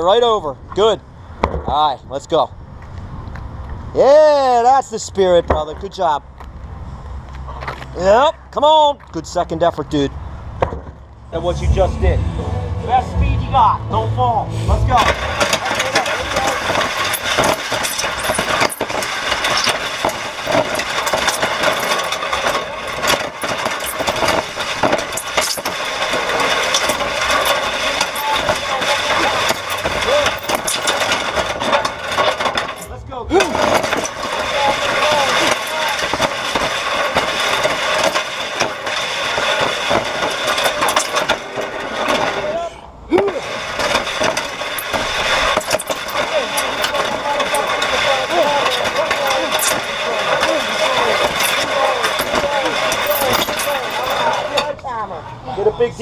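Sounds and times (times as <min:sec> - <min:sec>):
steel sled scraping over asphalt: 0:11.3 - 0:42.7, 0:43.3 - 0:54.8.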